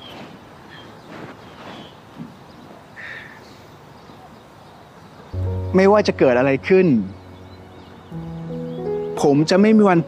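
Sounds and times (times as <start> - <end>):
steady rush of background noise: 0.0 - 10.0
high bird chirps: 5.2 - 10.0.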